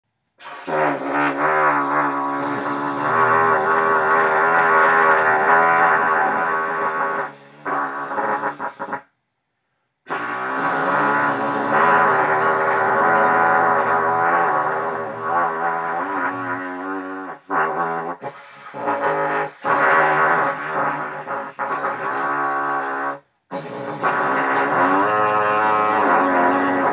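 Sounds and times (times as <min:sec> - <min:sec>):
trumpet sustained low note: 0:00.4 - 0:08.9, 0:10.1 - 0:26.9.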